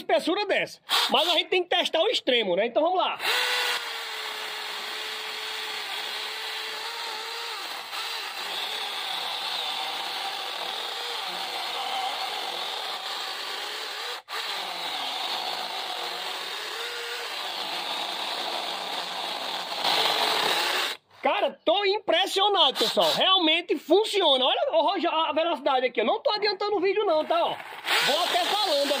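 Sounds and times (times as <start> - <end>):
chainsaw cutting a log: 0.9 - 1.2, 3.2 - 21.0, 27.7 - 29.0.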